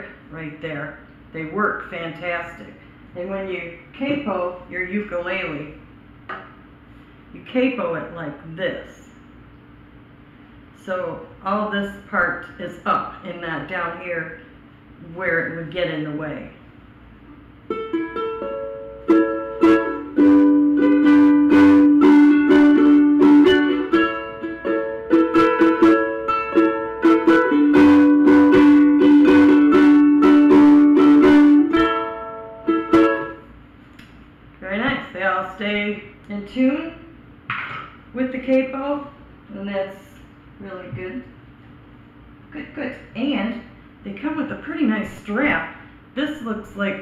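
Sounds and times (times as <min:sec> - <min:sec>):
ukulele chords strummed: 0:17.6 - 0:33.4.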